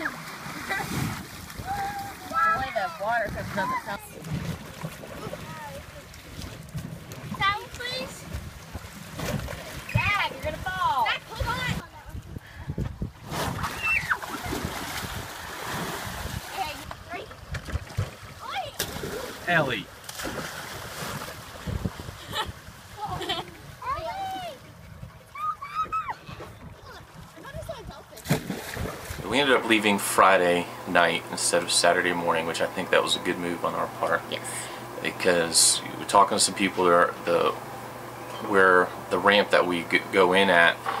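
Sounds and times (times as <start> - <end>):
child splashing into water: 0.0 - 2.7, 13.2 - 16.8, 17.5 - 22.2, 28.1 - 29.4
water sloshing around boat: 0.0 - 41.0
wind buffeting microphone: 6.7 - 16.8, 21.4 - 29.3
light splash: 13.3 - 22.0, 28.1 - 29.5.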